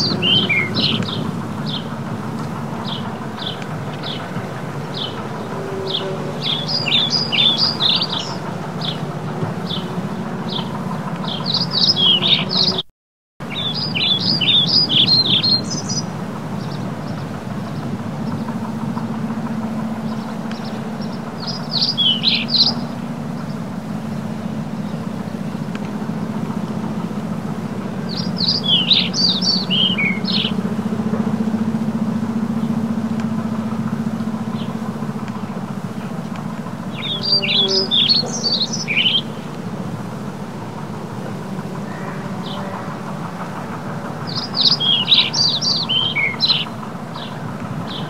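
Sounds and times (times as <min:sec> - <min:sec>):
small bird chirping: 0:00.0 - 0:01.9, 0:02.8 - 0:12.8, 0:13.5 - 0:18.5, 0:20.0 - 0:23.6, 0:28.0 - 0:30.7, 0:36.8 - 0:39.5, 0:44.2 - 0:48.0
steady low hum: 0:00.0 - 0:12.8, 0:13.4 - 0:48.0.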